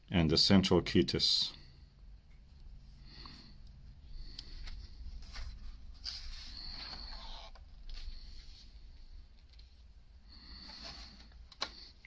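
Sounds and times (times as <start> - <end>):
paper page rustling: 4.4 - 8.8.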